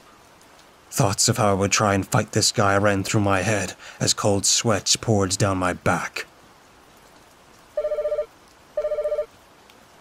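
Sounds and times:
telephone ringing: 0:07.8 - 0:09.3.

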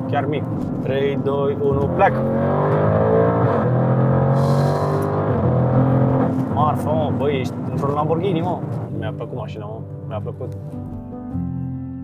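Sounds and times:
car engine at full throttle: 0:00.0 - 0:09.0.

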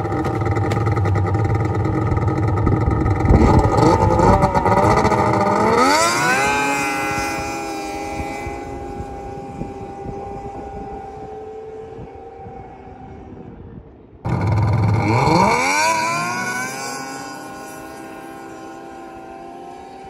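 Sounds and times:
snowmobile engine revving: 0:00.0 - 0:13.4, 0:14.3 - 0:20.0.

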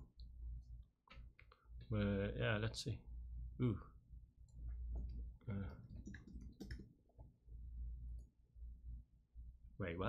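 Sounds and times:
computer keyboard typing: 0:06.0 - 0:06.9.

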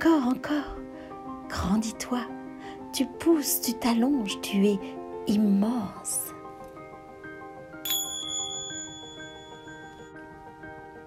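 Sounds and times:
soft melodic background music: 0:00.0 - 0:11.0
small bell ringing: 0:07.8 - 0:10.3.

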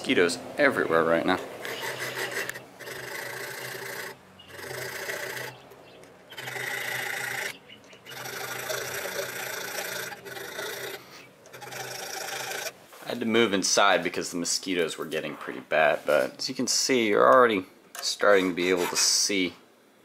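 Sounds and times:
hand file rasping on metal: 0:01.6 - 0:05.6, 0:06.3 - 0:07.5, 0:08.1 - 0:12.7.

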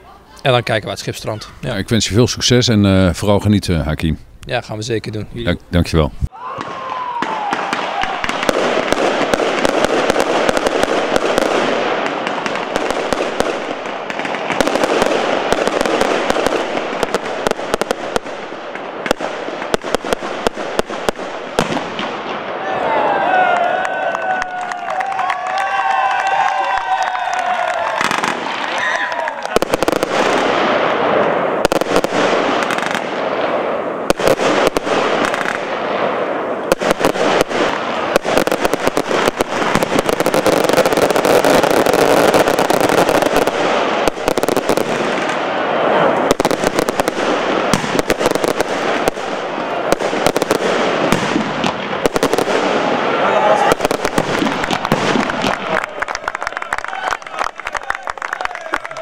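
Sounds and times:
fireworks crackling bangs and pops: 0:04.5 - 0:22.6, 0:24.2 - 0:59.0.

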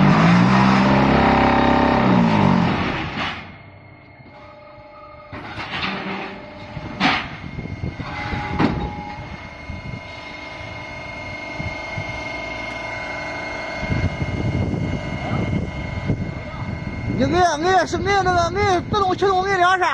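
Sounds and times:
machine hum with whine: 0:00.0 - 0:19.9
loud metal clanks: 0:05.3 - 0:09.2.

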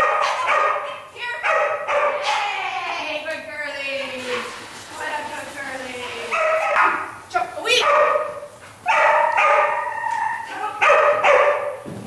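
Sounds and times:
dog barking and yipping: 0:00.0 - 0:02.5, 0:06.2 - 0:07.1, 0:07.7 - 0:11.8.

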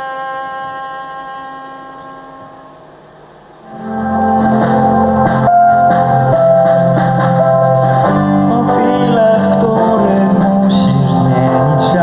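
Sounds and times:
violin holding a long note: 0:00.0 - 0:10.3
live band playing loudly: 0:03.6 - 0:12.0.

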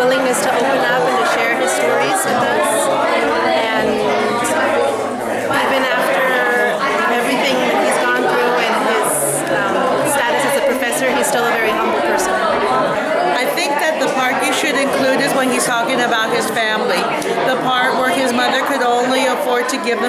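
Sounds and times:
many people talking at once: 0:00.0 - 0:20.0.

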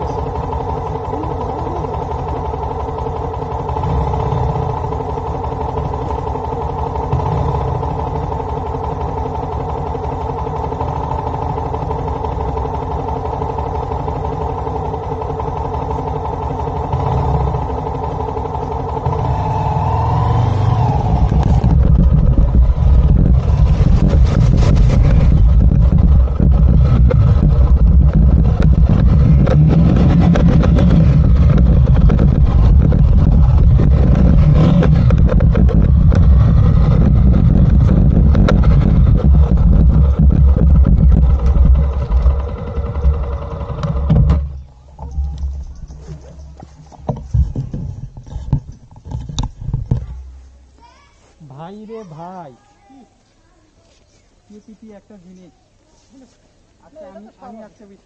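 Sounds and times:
motorcycle engine: 0:00.0 - 0:52.4.

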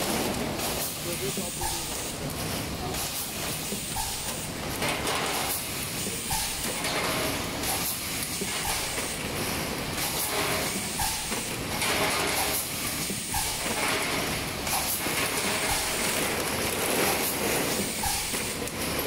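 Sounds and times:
mechanical clatter: 0:00.0 - 0:19.0.

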